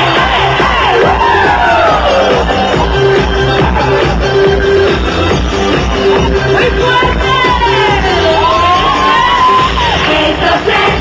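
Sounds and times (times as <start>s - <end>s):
crowd cheering and screaming: 0.0s - 11.0s
live electronic dance music: 0.0s - 11.0s.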